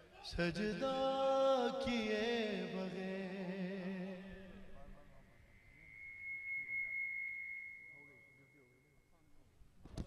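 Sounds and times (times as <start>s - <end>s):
microphone feedback ringing: 5.1s - 9.6s.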